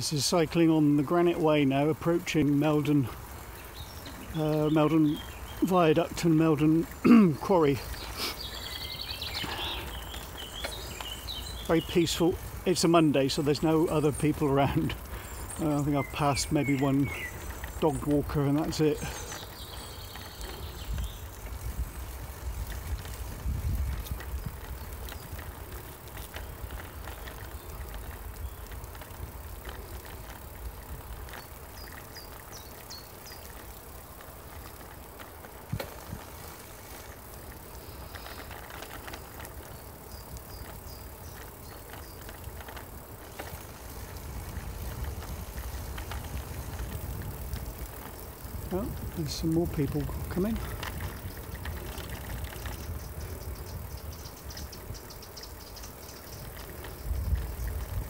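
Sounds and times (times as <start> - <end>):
bicycle rolling on tarmac: 0.0 - 58.0.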